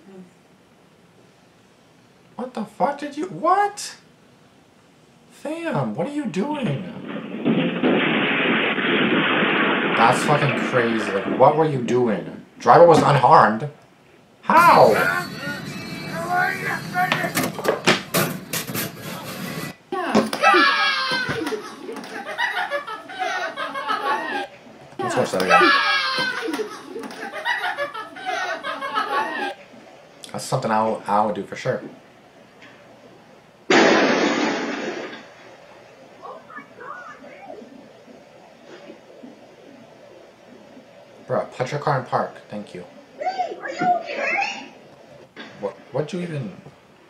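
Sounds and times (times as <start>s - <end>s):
voices from video: 9.9s - 13.8s, 14.4s - 18.3s, 23.2s - 32.0s, 36.2s - 37.9s, 41.2s - 46.7s
person speaking: 14.4s - 17.8s, 25.0s - 25.8s.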